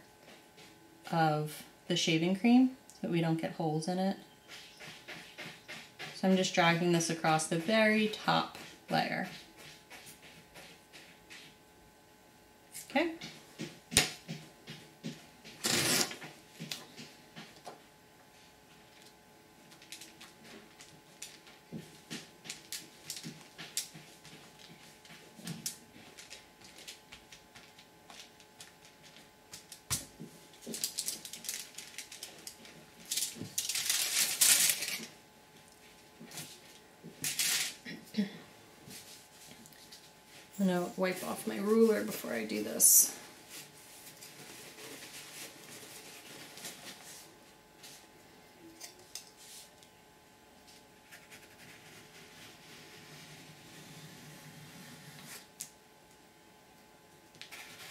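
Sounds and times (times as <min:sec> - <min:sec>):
paper crinkling and rustling: 0:18.8 - 0:35.2, 0:43.5 - 0:48.0, 0:57.4 - 0:57.9
paper being handled: 0:30.6 - 0:35.1
paper towel rustling: 0:38.9 - 0:48.1.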